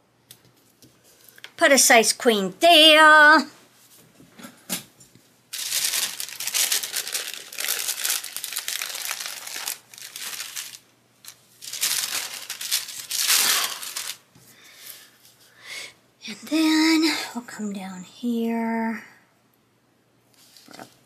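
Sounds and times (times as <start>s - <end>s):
sticker sheet crinkling: 5.5s - 14.2s.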